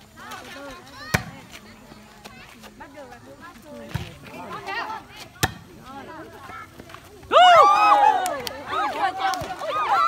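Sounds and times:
spectators chatting: 0.0s - 10.0s
volleyball being struck: 5.4s - 5.7s
women shouting: 7.3s - 10.0s.

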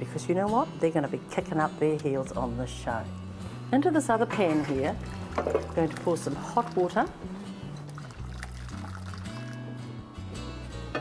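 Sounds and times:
hot water pouring into a pan: 4.8s - 9.7s
background music with bass line: 7.1s - 11.0s.

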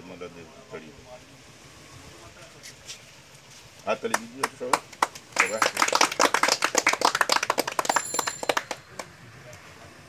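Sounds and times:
people clapping: 3.9s - 9.7s.

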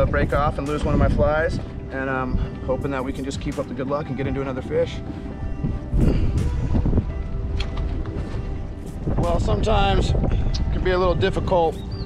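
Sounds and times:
background music with held tones: 0.0s - 12.0s
wind rumbling on microphone: 0.0s - 12.0s.

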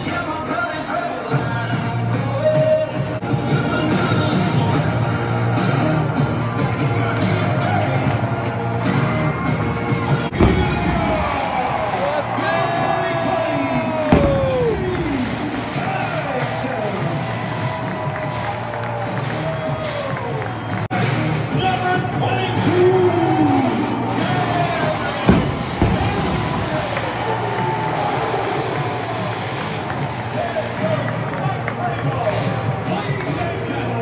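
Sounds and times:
music over stadium loudspeakers: 0.0s - 34.0s
crowd cheering and whooping: 2.4s - 34.0s.

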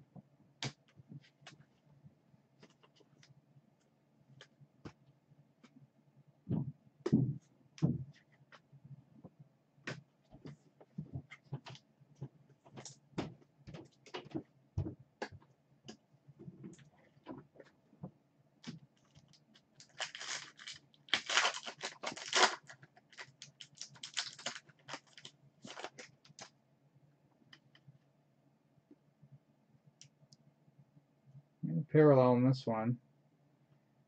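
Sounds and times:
foil wrappers crinkling: 19.0s - 26.5s.

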